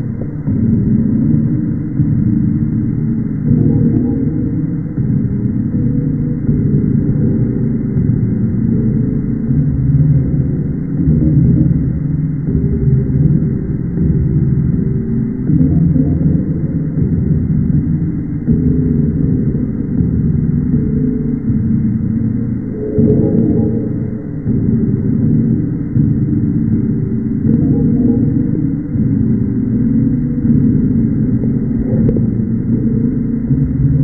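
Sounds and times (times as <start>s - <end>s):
slowed deep rumbling drone: 0.0s - 34.0s.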